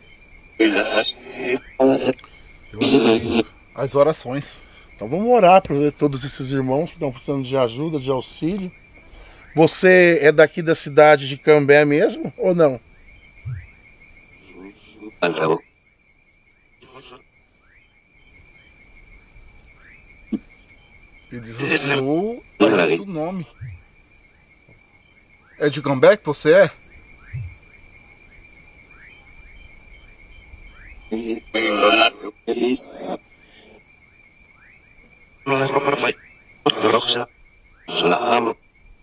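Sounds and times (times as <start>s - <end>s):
night insects trilling: 0.0s - 39.0s
person's voice: 0.6s - 2.2s, 2.8s - 8.7s, 9.6s - 12.8s, 21.3s - 23.6s, 31.1s - 33.2s, 35.5s - 37.3s, 37.9s - 38.6s.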